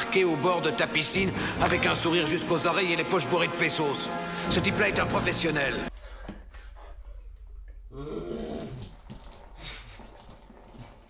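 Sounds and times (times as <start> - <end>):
man gulping gurgling: 7.8 - 11.0.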